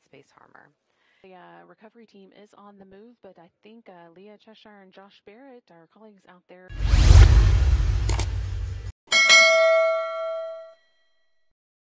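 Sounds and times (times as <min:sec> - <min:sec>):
rushing noise: 0:06.7 - 0:08.9
bright bell-like ding: 0:09.1 - 0:10.8.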